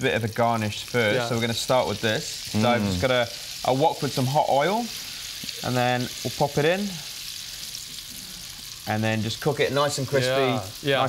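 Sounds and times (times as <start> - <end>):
deep-frying sizzle in oil: 0.0 - 11.0.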